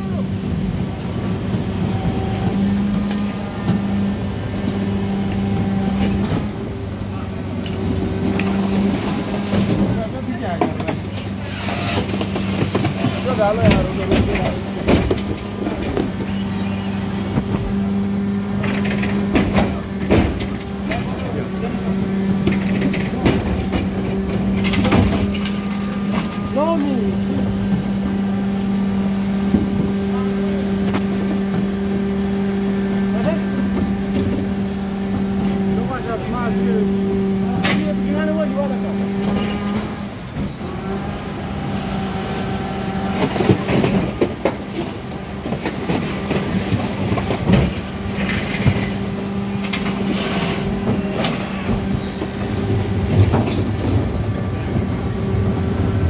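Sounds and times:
refuse lorry humming: 0.0s - 56.0s.

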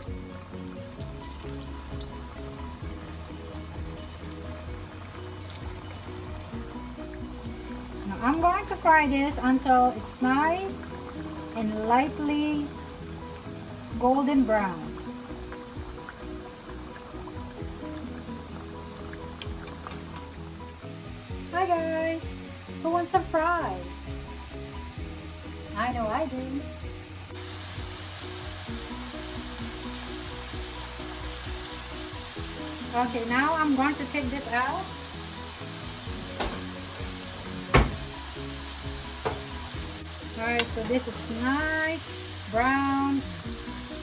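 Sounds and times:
background music with held notes: 0.0s - 44.0s
potatoes sizzling in hot oil: 0.0s - 44.0s.

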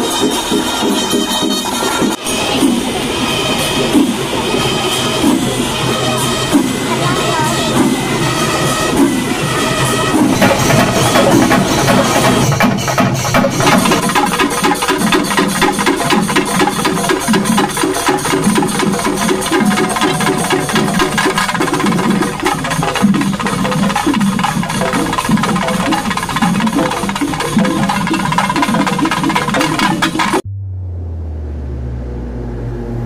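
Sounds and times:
fast drum and cymbal music: 0.0s - 30.4s
low steady tones: 2.2s - 33.0s.

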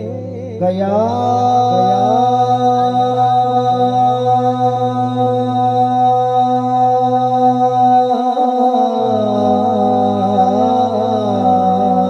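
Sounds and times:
low drone of backing voices: 0.0s - 12.0s
man chanting a long note: 0.0s - 12.0s.

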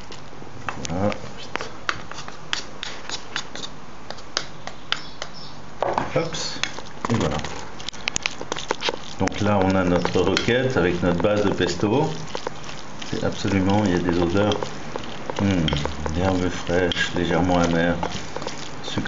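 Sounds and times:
utensil scraping ceramic bowl: 6.6s - 19.0s
voice murmuring: 15.4s - 17.9s.

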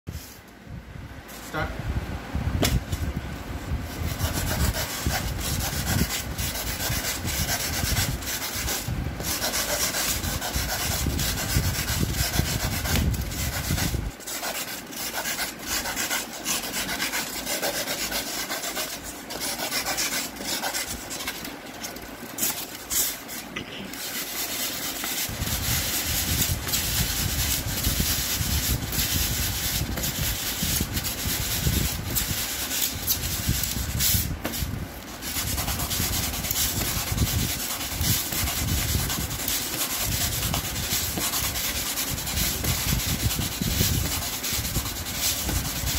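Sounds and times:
knife sawing through polystyrene: 3.9s - 45.9s.

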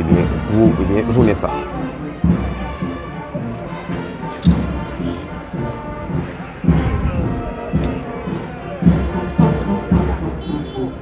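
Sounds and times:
brass band music: 0.0s - 11.0s
heavy low drum beats: 0.0s - 11.0s.

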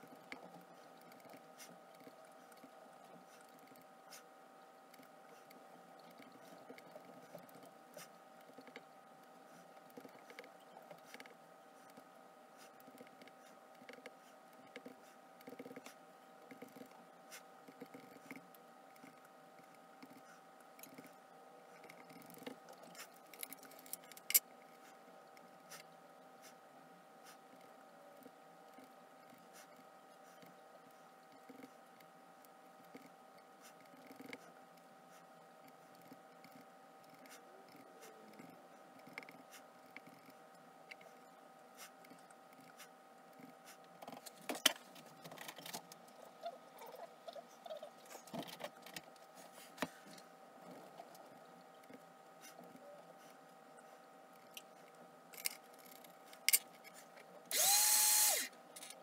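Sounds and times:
faint steady hum: 0.0s - 59.0s
faint steady whine: 0.0s - 59.0s.

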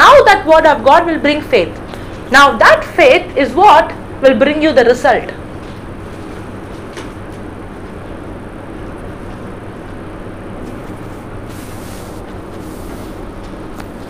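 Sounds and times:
low even hum: 0.0s - 14.0s.

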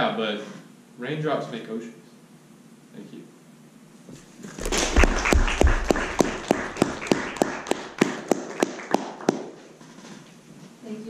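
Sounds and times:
audience applauding: 4.6s - 9.6s
close hand claps: 4.6s - 9.6s.

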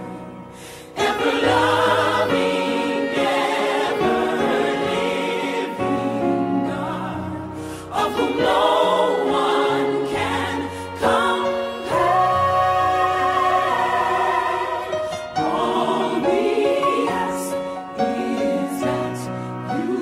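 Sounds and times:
choir singing a slow hymn: 0.0s - 20.0s.

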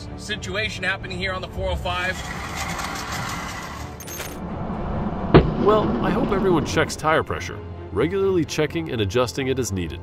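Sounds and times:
metal scraping on asphalt: 1.6s - 7.6s.

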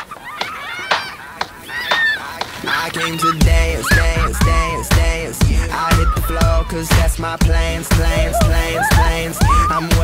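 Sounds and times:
children shouting and squealing: 0.0s - 5.0s, 5.7s - 7.0s, 8.0s - 10.0s.

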